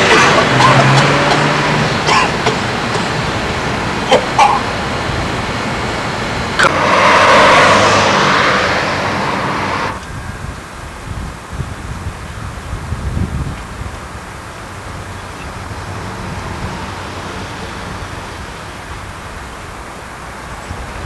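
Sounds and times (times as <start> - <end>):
vehicle passing: 0.0 - 10.1, 15.2 - 18.9
street traffic: 0.0 - 11.5, 13.5 - 21.0.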